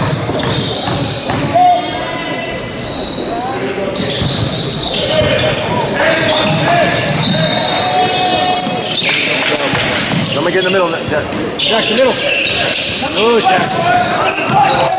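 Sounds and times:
basketball bouncing on court: 0:00.0 - 0:01.6, 0:04.0 - 0:11.6, 0:12.5 - 0:14.9
voices of players and spectators: 0:00.0 - 0:14.9.

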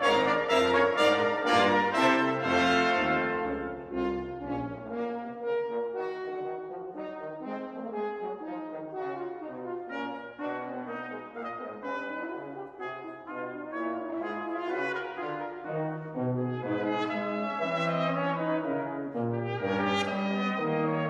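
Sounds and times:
brass ensemble playing: 0:00.0 - 0:21.0
tuba bass line: 0:00.0 - 0:21.0.

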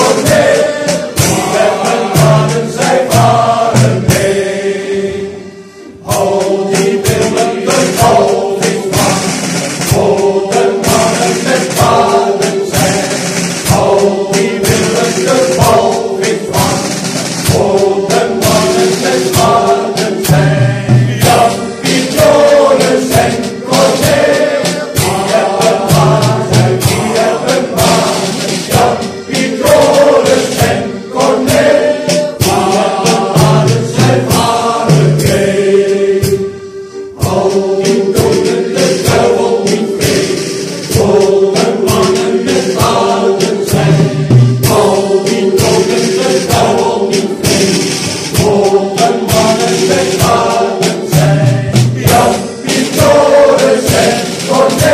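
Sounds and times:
drums and cymbals beat: 0:00.0 - 0:54.9
male choir singing in unison: 0:00.0 - 0:54.9.

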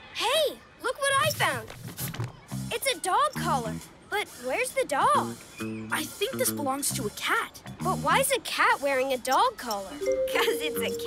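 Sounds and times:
child character's wordless voice: 0:00.2 - 0:01.7, 0:02.7 - 0:11.0
light background music: 0:02.5 - 0:04.4, 0:05.0 - 0:11.0.

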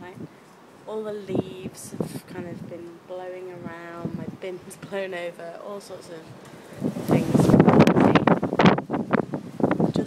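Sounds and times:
gusty wind on microphone: 0:01.2 - 0:05.3, 0:05.9 - 0:10.0.

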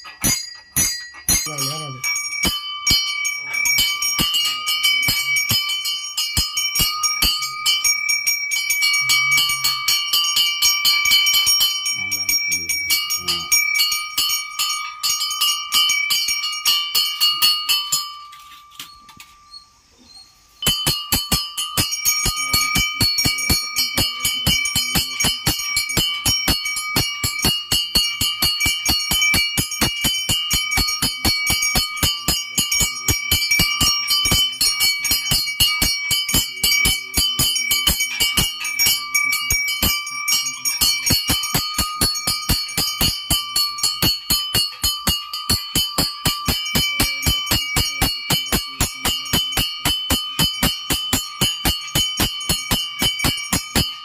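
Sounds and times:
hand bell ringing rapidly: 0:00.0 - 0:19.1, 0:20.6 - 0:54.0.

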